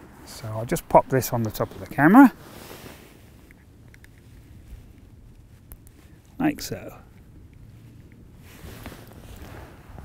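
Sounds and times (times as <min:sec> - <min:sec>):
faint low wind rumble: 0:00.0 - 0:10.0.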